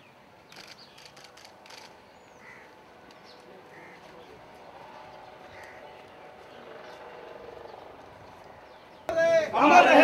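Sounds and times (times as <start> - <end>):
camera shutters clicking: 0.5 - 2.0.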